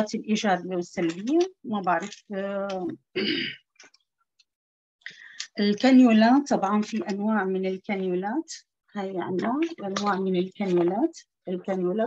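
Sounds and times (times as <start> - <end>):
woman talking: 0.0 - 3.1, 5.4 - 12.0
woman clearing her throat: 3.2 - 3.6.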